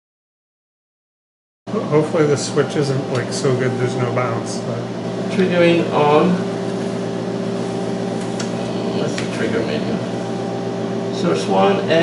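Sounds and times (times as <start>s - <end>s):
electrical hum of test equipment: 1.7s - 12.0s.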